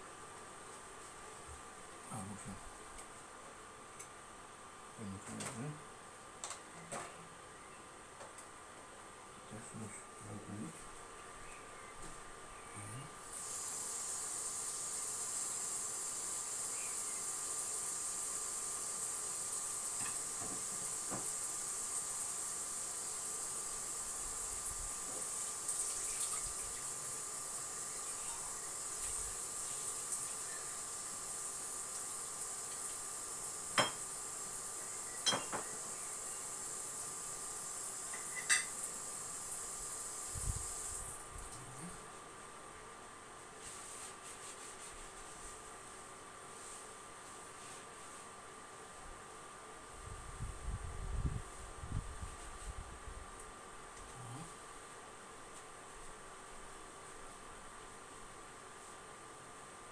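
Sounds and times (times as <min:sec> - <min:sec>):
high-pitched hiss: 0:01.3 - 0:02.8, 0:09.4 - 0:42.6, 0:43.5 - 0:59.9
kitchenware clinking: 0:33.8 - 0:34.1, 0:35.2 - 0:35.7, 0:38.1 - 0:38.8.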